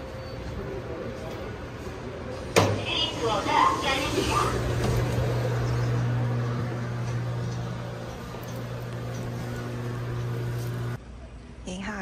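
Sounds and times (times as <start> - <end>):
train and station noise: 0.0 - 11.7
low electrical hum: 0.0 - 12.0.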